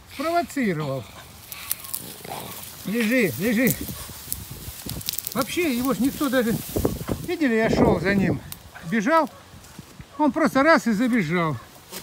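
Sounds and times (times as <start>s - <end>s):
dog grunting: 0.8s - 3.0s.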